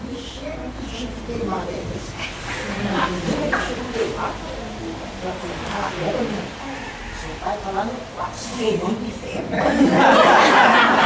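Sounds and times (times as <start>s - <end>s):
indistinct voices talking: 0.0s - 11.0s.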